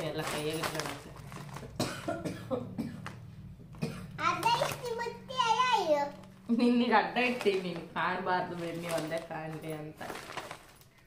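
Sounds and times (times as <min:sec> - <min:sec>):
child coughing: 0:01.8 - 0:03.0, 0:03.8 - 0:04.3
child calling out and babbling: 0:04.2 - 0:06.2.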